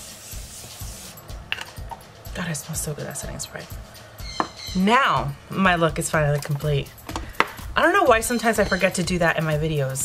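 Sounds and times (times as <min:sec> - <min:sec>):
mist spray hissing: 0:00.0 - 0:01.2
soft background beat: 0:00.0 - 0:10.0.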